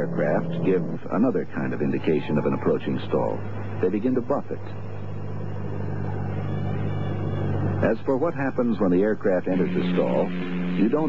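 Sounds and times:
aircraft piston engine droning: 0.0 - 11.0.

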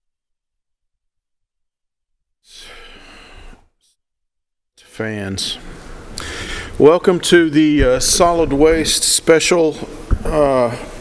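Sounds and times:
person exhaling close to microphone: 2.5 - 3.7, 6.2 - 6.8.

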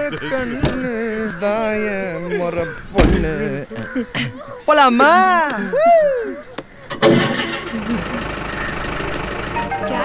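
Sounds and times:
vehicle engine starting and running: 6.9 - 10.0.

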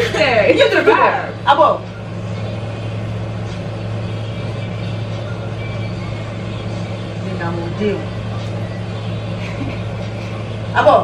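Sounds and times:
steady low hum: 0.0 - 11.0.

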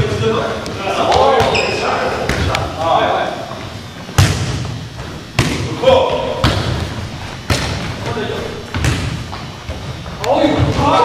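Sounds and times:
volleyball being struck: 4.1 - 9.9.

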